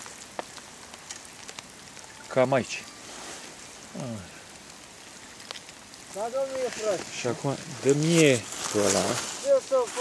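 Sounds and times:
faint hiss: 0.0 - 10.0
man speaking: 6.2 - 10.0.

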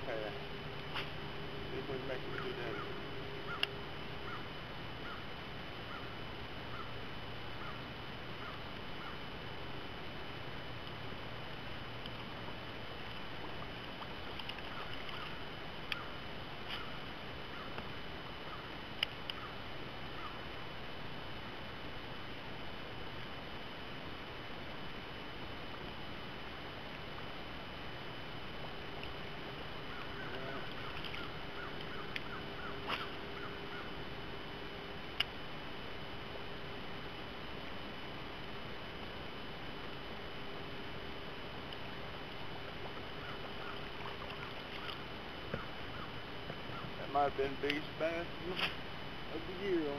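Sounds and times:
low steady hum: 0.0 - 49.9
outdoor background hiss: 0.0 - 49.9.

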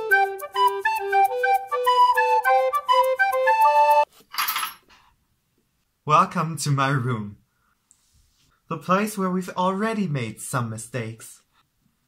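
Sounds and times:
curtain rings clinking: 4.3 - 4.8.

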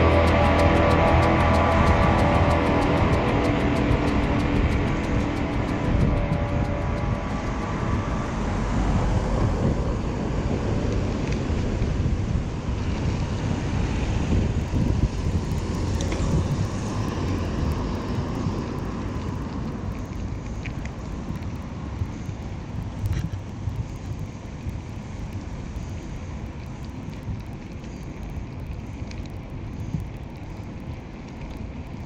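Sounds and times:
background music: 0.0 - 8.8
road traffic passing: 0.0 - 12.0
wind rumble on microphone: 0.0 - 32.0.

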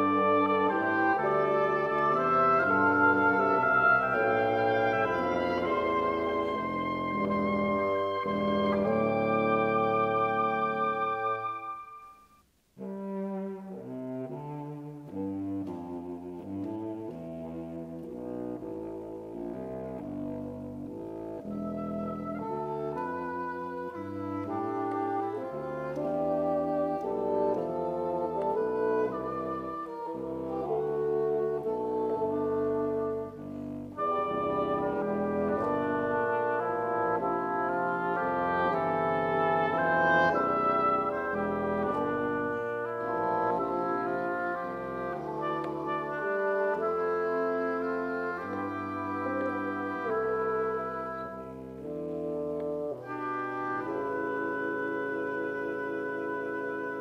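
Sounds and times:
double-reed quartet playing: 0.0 - 57.0.

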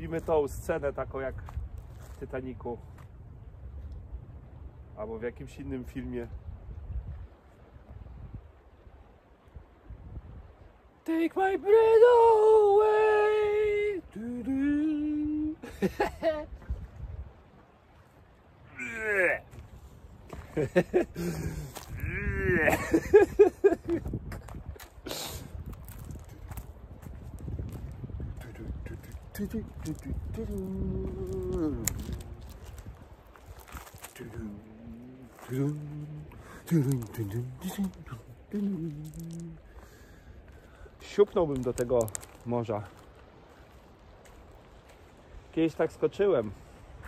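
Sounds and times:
wind rumble on microphone: 0.0 - 11.0, 11.7 - 18.8, 19.4 - 47.0
man singing long notes: 11.4 - 15.6, 29.4 - 32.5, 34.2 - 39.6
man humming: 12.1 - 15.6, 21.2 - 22.8, 28.5 - 32.6, 34.2 - 39.8.

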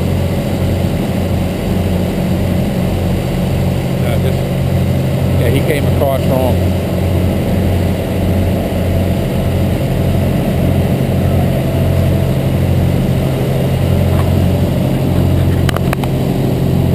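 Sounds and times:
engine humming steadily: 0.0 - 16.9.

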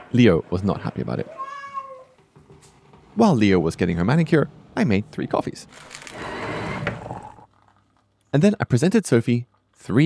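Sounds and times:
electric coffee grinder whirring: 5.8 - 7.2.

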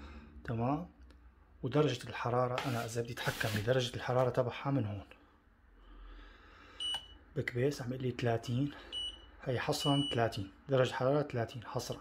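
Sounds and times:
washing machine electronic beep: 6.8 - 7.2, 8.8 - 10.5.

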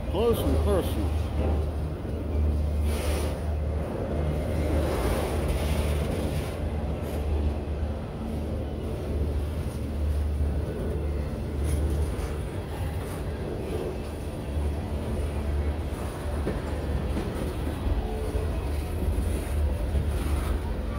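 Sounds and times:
steel wheels rumbling on rails: 0.0 - 20.9
train clatter: 11.5 - 20.9.

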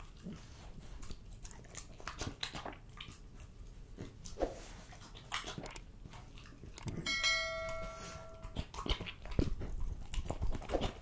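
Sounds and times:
dog licking and chewing meat: 0.0 - 11.0
bell chime: 7.1 - 8.6.

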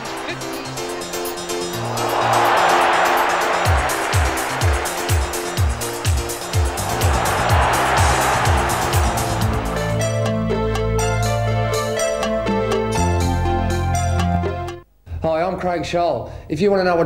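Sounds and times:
electronic music: 1.0 - 12.1
loud rushing noise: 1.8 - 10.4.

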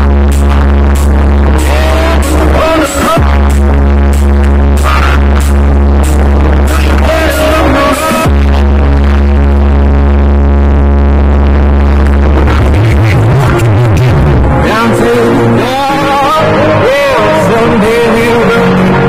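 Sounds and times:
deep bass note: 0.0 - 19.0
loud electronic music: 0.0 - 19.0.

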